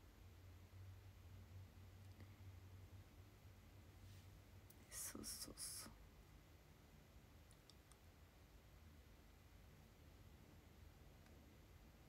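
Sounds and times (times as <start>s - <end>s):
faint light clicks: 7.5s - 8.1s.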